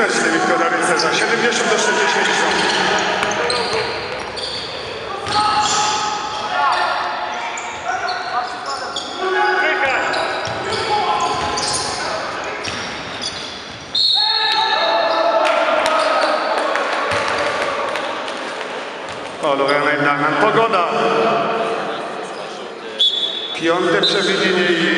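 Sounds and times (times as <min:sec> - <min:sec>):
players shouting: 0:01.6 - 0:13.4, 0:14.0 - 0:18.4
sneakers squeaking: 0:02.2 - 0:15.3, 0:22.3 - 0:23.6
ball bouncing on wooden court: 0:03.2 - 0:04.6, 0:05.2 - 0:05.8, 0:10.4 - 0:11.7, 0:12.6 - 0:13.1, 0:17.1 - 0:17.6.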